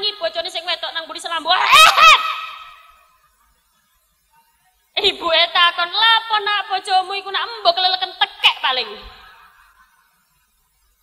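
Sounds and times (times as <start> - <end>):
woman exclaiming through microphone: 1.4 - 2.7.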